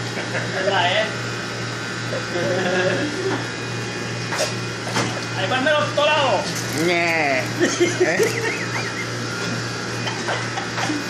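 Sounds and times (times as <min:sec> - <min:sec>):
kitchen machinery hum: 0:00.0 - 0:11.0.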